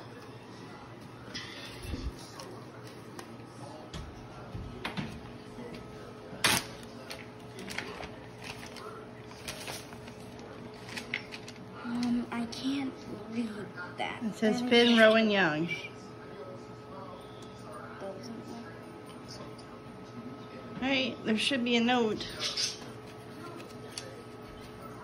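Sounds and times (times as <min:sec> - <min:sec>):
paper crinkling and rustling: 0:06.4 - 0:11.6.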